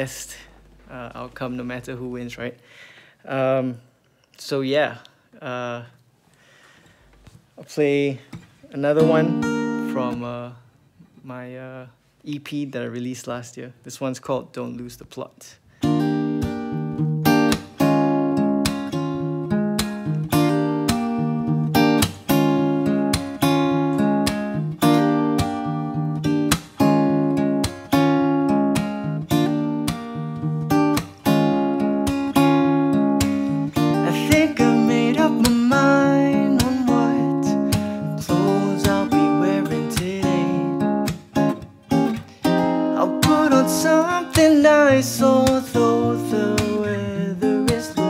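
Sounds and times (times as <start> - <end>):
acoustic guitar strumming: 8.4 - 10.4, 15.8 - 48.0.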